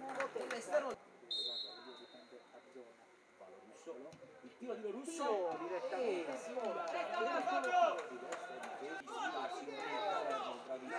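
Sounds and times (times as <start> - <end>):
referee's whistle blast: 1.3 - 2.3.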